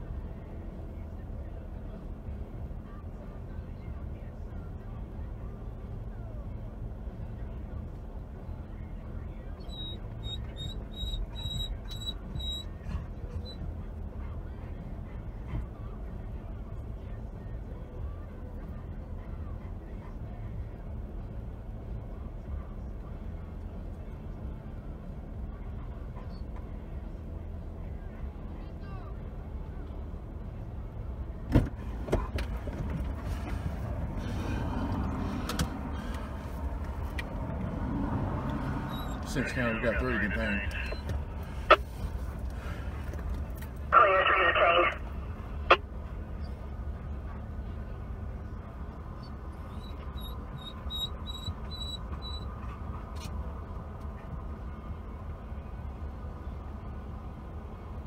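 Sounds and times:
vehicle idling hum: 0.0 - 58.0
rustling noise: 32.6 - 34.5.

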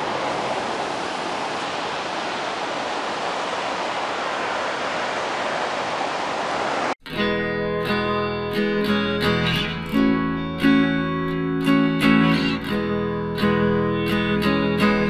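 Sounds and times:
ocean surf breaking: 0.0 - 7.0
acoustic guitar music: 7.0 - 15.0.

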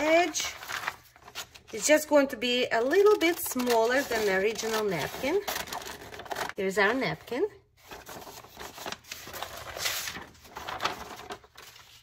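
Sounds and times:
paper rustling and crinkling: 0.0 - 2.0, 2.8 - 6.6, 7.8 - 12.0.

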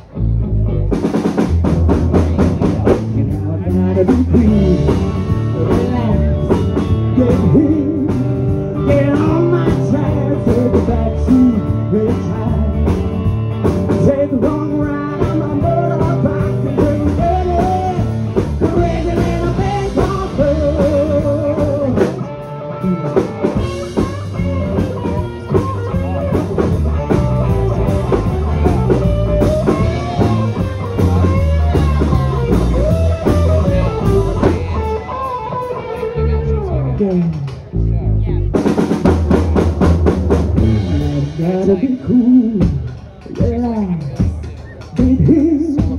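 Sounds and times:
live rock band playing: 0.0 - 45.9.

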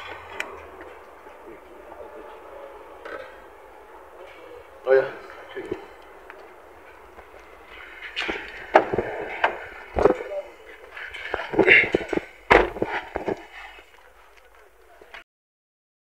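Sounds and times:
indistinct voices talking: 0.0 - 15.2
knocks and thumps on car: 11.4 - 13.4.

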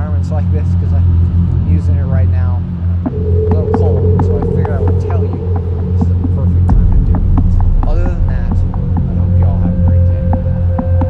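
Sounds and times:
low throbbing hum: 0.0 - 11.0.

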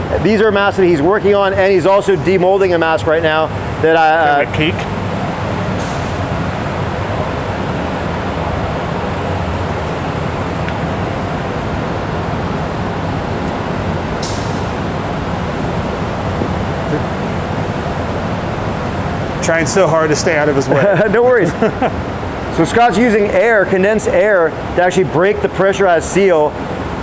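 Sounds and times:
compressed air rushing: 3.2 - 8.4, 12.4 - 19.6
short sharp hisses: 5.8 - 6.2, 14.2 - 14.8.

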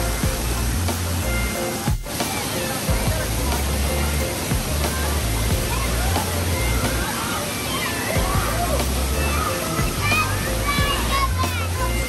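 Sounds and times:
background music with bass: 0.0 - 7.1, 8.2 - 12.0
voices: 0.0 - 12.0
water pouring and splashing: 0.0 - 12.0.

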